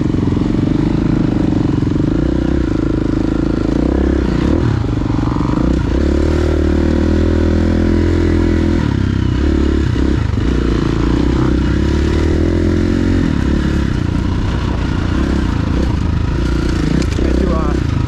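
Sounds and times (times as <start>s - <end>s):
motorcycle engine running under load: 0.0s - 18.0s.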